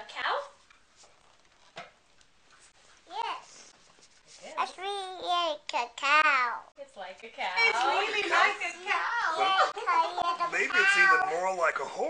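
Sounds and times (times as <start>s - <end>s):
toddler talking: 4.6s - 6.7s, 9.2s - 11.4s
adult talking: 10.4s - 12.0s.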